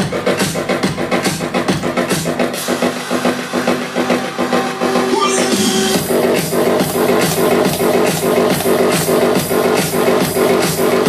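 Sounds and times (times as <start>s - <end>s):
electronic house music: 0.0s - 11.0s.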